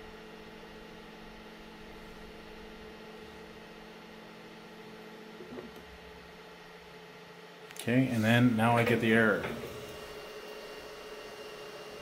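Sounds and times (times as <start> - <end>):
cooling fans hissing: 0.0 - 12.0
faint constant hum: 0.0 - 12.0.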